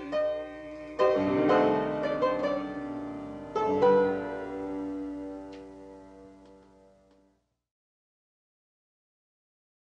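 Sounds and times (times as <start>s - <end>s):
piano chord ringing: 0.0s - 7.0s.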